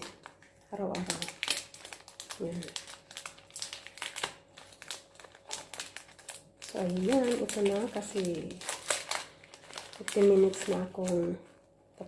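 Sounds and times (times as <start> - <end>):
wrapper crinkling: 0.0 - 12.0.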